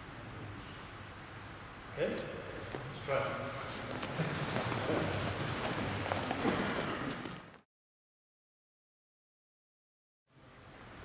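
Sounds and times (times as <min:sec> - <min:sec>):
people moving about in a hall: 0:00.0 - 0:07.6.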